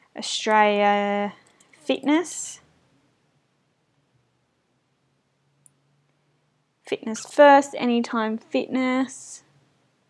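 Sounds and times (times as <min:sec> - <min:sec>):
woman speaking: 0:00.1 - 0:02.7, 0:06.9 - 0:09.5.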